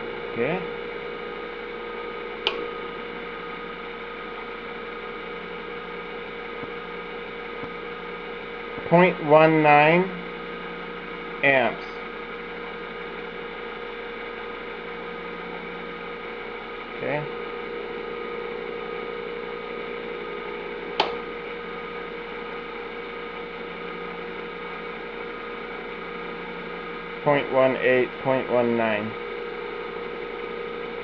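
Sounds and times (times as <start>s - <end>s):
buzzy electrical hum: 0.0s - 31.0s
sharp click: 2.4s - 2.7s, 21.0s - 21.2s.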